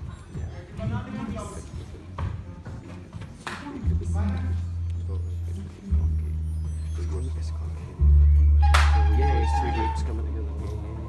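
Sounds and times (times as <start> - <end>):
low bass drone: 3.9 - 11.0.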